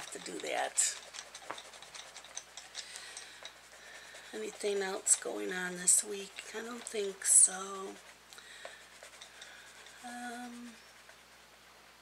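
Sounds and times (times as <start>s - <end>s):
pencil scratching on paper: 0.0s - 11.6s.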